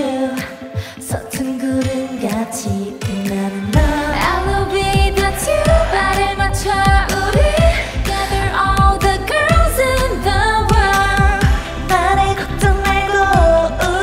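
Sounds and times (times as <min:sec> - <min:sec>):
drum beat and bass: 0:00.0 - 0:14.0
female voices singing: 0:00.0 - 0:14.0.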